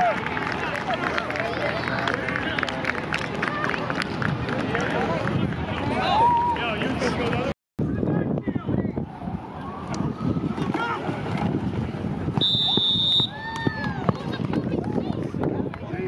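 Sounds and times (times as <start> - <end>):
referee's whistle: 12.4 - 13.4.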